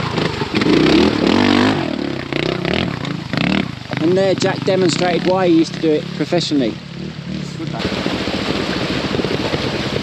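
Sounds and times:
motorcycle engine chugging: 0:00.0 - 0:10.0
wind buffeting microphone: 0:07.0 - 0:10.0.

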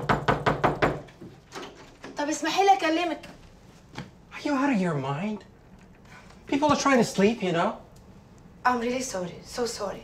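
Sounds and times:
fist knocking on wooden door: 0:00.0 - 0:01.1.

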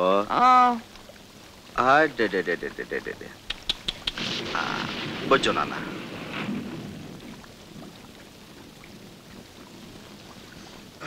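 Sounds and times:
faint raindrop ticks: 0:00.0 - 0:11.0
steady rain hiss: 0:00.0 - 0:11.0.

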